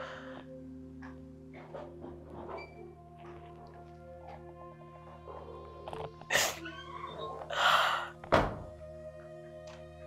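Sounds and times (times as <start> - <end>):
music of sustained tones: 0.0 - 10.0
sudden thump: 8.3 - 8.7.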